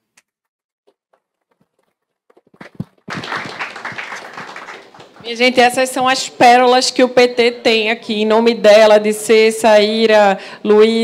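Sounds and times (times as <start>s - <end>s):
audience applauding: 2.6s - 5.4s.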